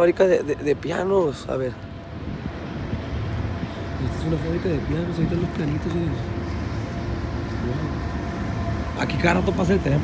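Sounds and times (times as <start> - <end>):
vehicle rumble: 0.0 - 10.0.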